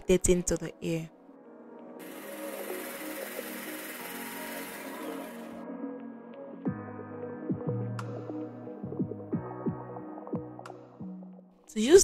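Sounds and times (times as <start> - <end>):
background music: 0.0 - 12.0
hand blender motor whirring: 2.0 - 5.6.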